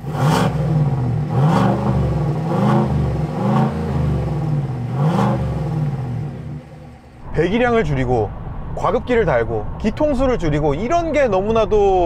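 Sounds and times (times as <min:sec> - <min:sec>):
engine revving: 0:00.0 - 0:10.8.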